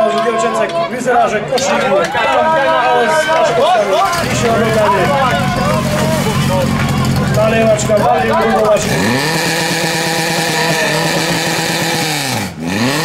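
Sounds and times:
loud shouting voices: 0:00.0 - 0:11.8
pump engine running: 0:04.0 - 0:13.0.

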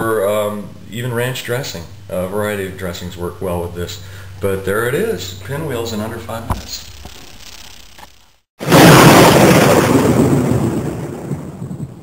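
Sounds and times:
thunder crash rumbling: 0:08.6 - 0:12.0.

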